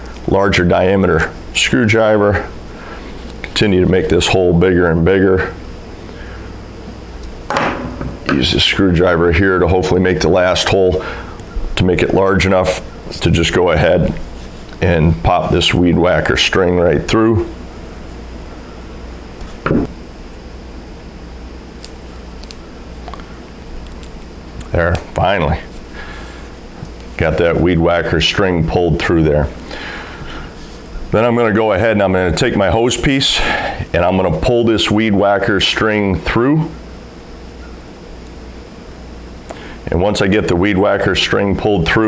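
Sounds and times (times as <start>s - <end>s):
steady low hum: 0.0s - 42.0s
screwdriver thump: 7.5s - 8.2s.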